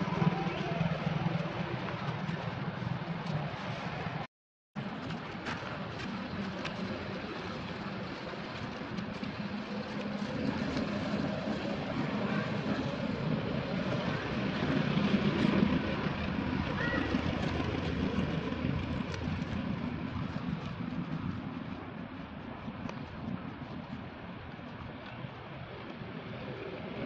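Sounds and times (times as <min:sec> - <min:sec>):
distant engine drone: 0:00.0 - 0:04.2, 0:04.8 - 0:27.0.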